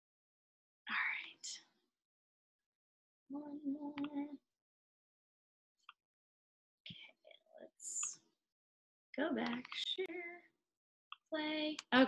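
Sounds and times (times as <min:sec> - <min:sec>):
person whispering: 0:00.9 - 0:01.6.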